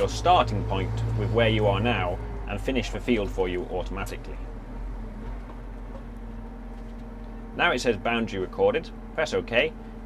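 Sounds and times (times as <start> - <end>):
tractor engine hum: 0.0 - 10.0.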